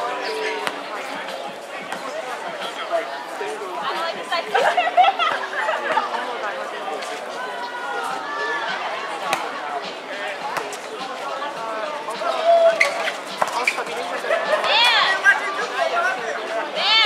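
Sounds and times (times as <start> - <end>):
people talking and calling out: 0.0 - 17.0.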